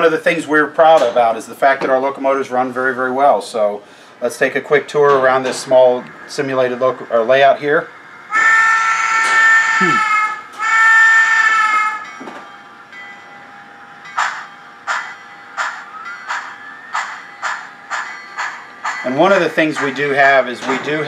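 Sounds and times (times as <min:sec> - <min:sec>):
steam locomotive exhaust chuffs: 0:03.8 - 0:21.0
steam whistle blasts: 0:08.3 - 0:12.1.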